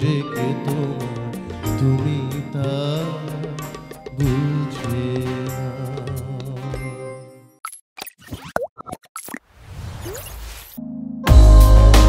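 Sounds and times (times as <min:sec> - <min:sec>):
cartoonish pops and plops: 0:07.6 - 0:10.2.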